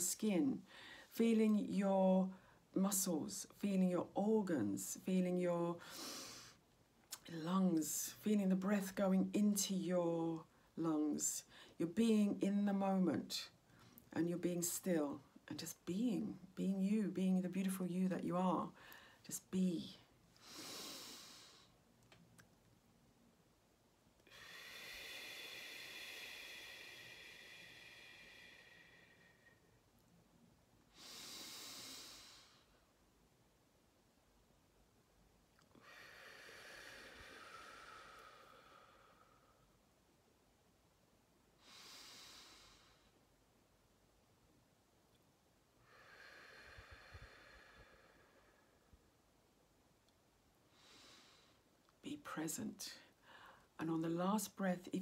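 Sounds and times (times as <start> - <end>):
woman breathing deeply: 0.7 - 1.1, 20.4 - 21.8, 24.2 - 29.8, 30.9 - 32.9, 35.7 - 39.8, 41.6 - 43.2, 45.8 - 49.1, 50.7 - 51.7, 53.1 - 53.8.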